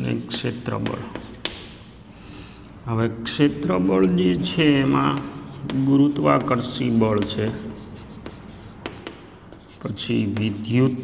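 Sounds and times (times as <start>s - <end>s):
chalk scratching on blackboard: 0.0s - 1.8s, 3.5s - 11.0s
chalk tapping on blackboard: 0.0s - 1.9s, 3.5s - 11.0s.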